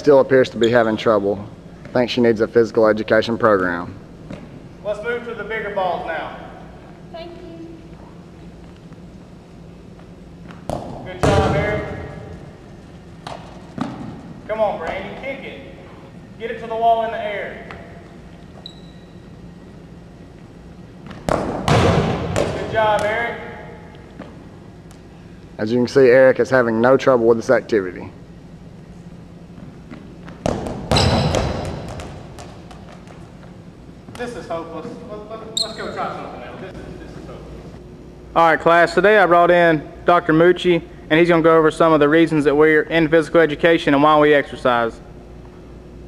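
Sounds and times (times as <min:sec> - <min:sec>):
balls bouncing lightly: 0:10.4 - 0:11.6, 0:29.6 - 0:34.3
rubber balls thudding: 0:21.1 - 0:23.1
rubber balls thudding on wall and floor: 0:21.1 - 0:23.1, 0:30.2 - 0:33.3.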